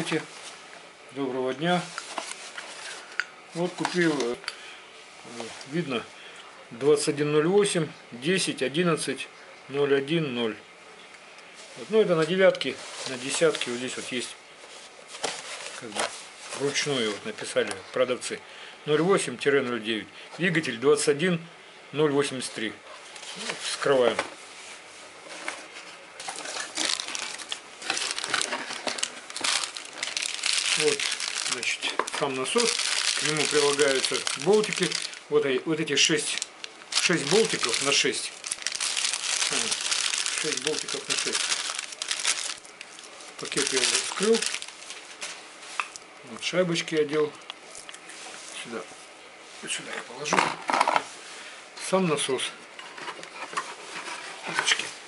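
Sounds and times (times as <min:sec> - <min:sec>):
plastic bag of bolts crinkling: 0:03.6 - 0:04.4, 0:26.2 - 0:45.2
cardboard box rustling: 0:25.3 - 0:35.2, 0:36.9 - 0:42.6.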